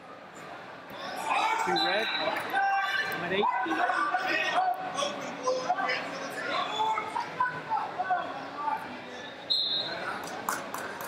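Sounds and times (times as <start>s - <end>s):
people shouting in echoing hall: 1.1s - 8.5s.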